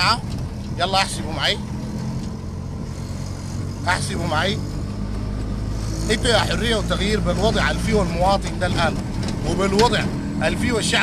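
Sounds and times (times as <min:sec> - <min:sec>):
road and wind noise: 0:00.0 - 0:11.0
small engine running: 0:01.0 - 0:11.0.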